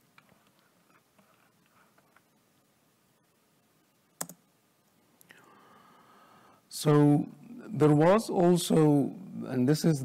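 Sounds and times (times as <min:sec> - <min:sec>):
sharp clicks: 0:04.2 - 0:04.4
man speaking: 0:06.7 - 0:10.0.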